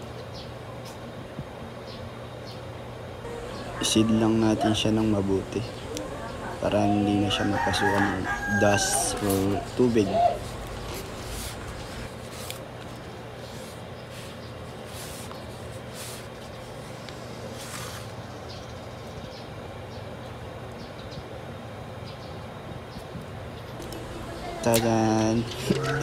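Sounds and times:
background hum and hiss: 0.0 - 26.0.

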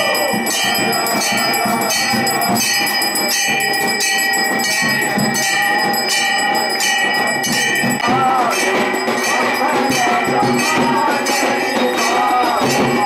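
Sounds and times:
temple bells ringing: 0.0 - 13.0.

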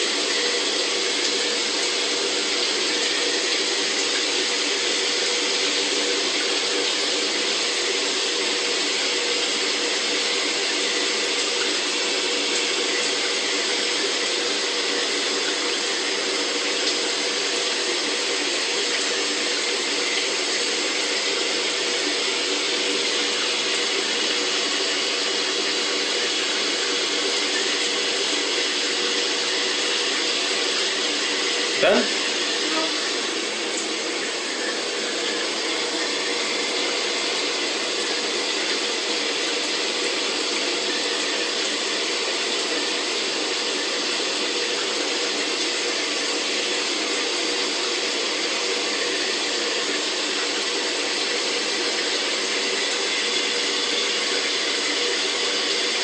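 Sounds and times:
shower water running: 0.0 - 56.0.

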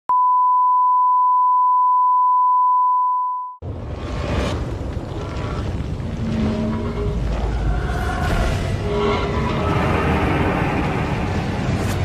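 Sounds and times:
steady test tone beep: 0.1 - 3.6.

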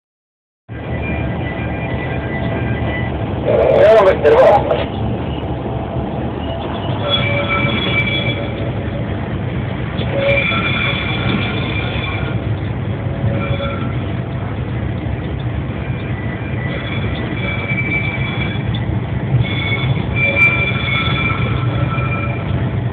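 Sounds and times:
high-pitched metallic squeals: 6.4 - 8.8, 10.0 - 12.4, 13.2 - 14.1, 15.8 - 22.6.

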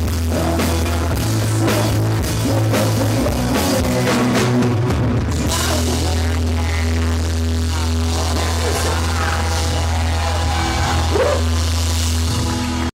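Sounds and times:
band holding low chord: 0.0 - 12.9.

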